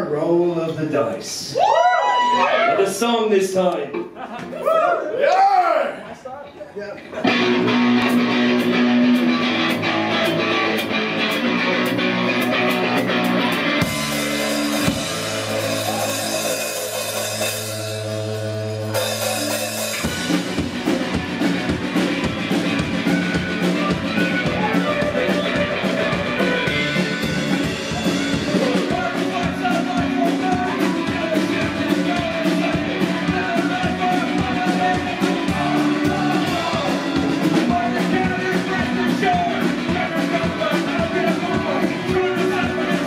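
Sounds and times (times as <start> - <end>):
bass: 0.0 - 6.4, 7.0 - 43.0
folk-rock band playing: 6.4 - 43.0
drum kit: 7.2 - 43.0.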